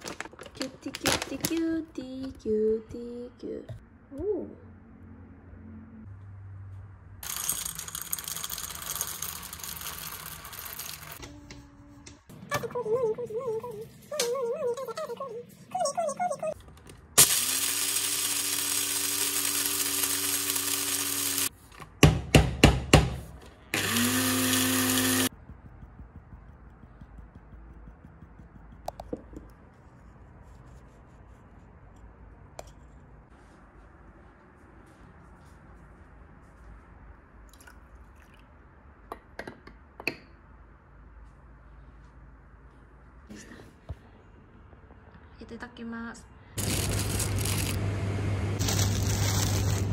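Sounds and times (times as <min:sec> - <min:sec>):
coffee grinder grinding beans: 0:07.2 - 0:11.3, 0:17.2 - 0:21.6, 0:23.8 - 0:28.9, 0:46.6 - 0:47.8, 0:48.6 - 0:49.9.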